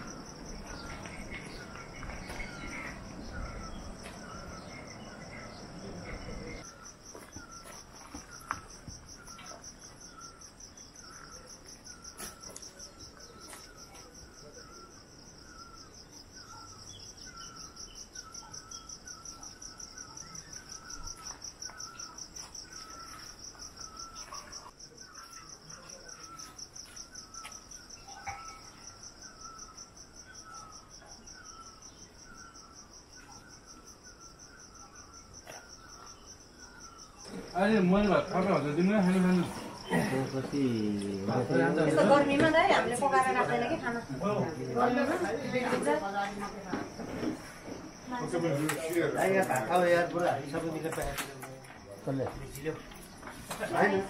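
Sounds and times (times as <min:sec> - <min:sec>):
insects trilling: 0:00.0 - 0:54.0.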